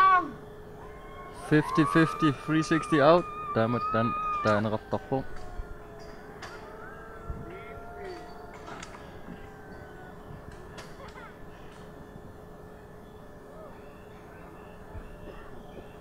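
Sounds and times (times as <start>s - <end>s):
outdoor background noise: 0.0s - 16.0s
thin steady hum: 0.0s - 16.0s
faint distant voices: 0.8s - 16.0s.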